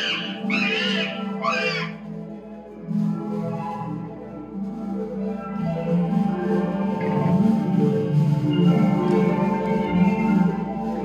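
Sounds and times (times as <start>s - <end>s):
bending high guitar notes: 0.0s - 2.0s.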